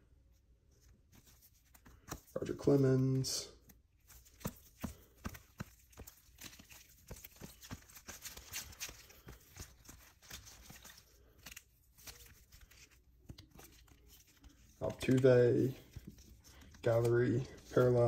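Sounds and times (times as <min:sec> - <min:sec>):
trading cards rustling and clicking: 0:00.8 - 0:18.0.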